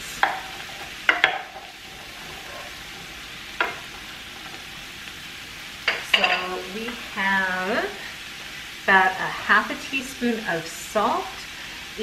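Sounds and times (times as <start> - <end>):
sweet potatoes sizzling in oil: 0.0 - 12.0
wooden spoon knocking pan: 0.2 - 1.7, 3.6 - 4.1.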